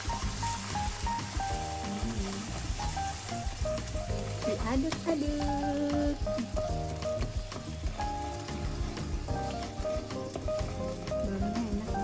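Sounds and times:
background music with held notes: 0.0 - 12.0
curry sizzling in a wok: 0.0 - 12.0.

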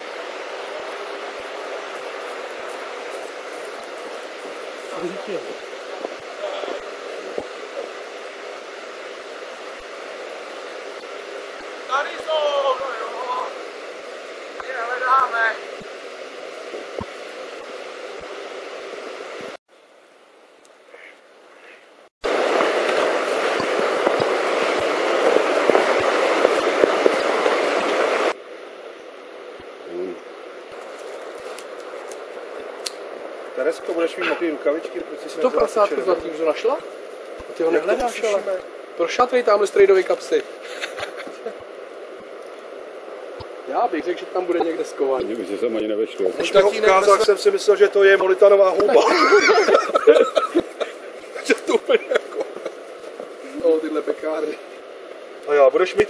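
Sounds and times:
quiet outdoor background: 0.0 - 56.0
outdoor rushing noise: 22.2 - 28.4.

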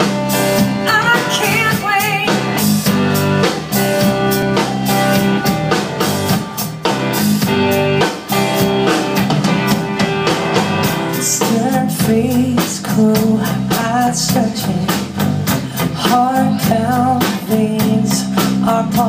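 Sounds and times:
drum kit beat: 0.0 - 19.0
electric guitar: 0.0 - 19.0.

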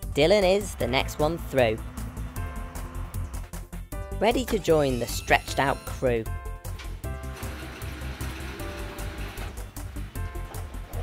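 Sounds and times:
children's song instrumental: 0.0 - 7.8.

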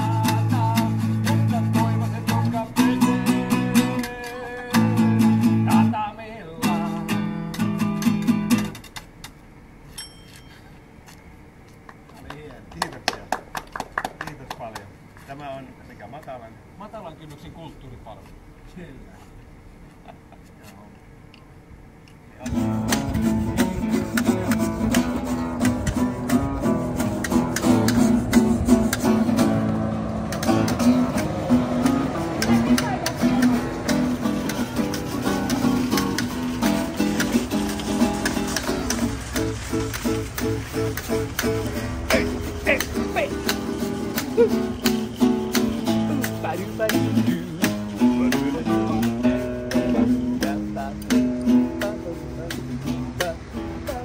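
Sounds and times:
person singing: 0.0 - 6.0, 46.2 - 54.0
acoustic guitar strumming: 0.0 - 11.1, 22.4 - 54.0.

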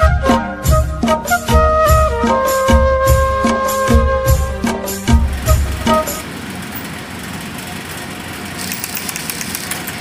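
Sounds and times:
mechanical workshop hum: 4.8 - 10.0.

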